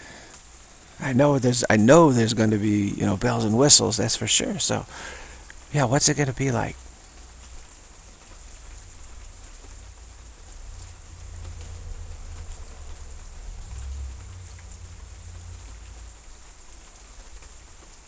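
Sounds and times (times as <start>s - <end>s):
rain pattering: 0.0s - 18.0s
low rumble: 6.8s - 18.0s.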